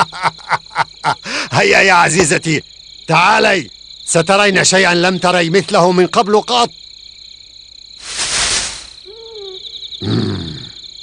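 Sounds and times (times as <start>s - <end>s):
crickets chirping: 0.0s - 11.0s
rushing whoosh: 8.0s - 9.0s.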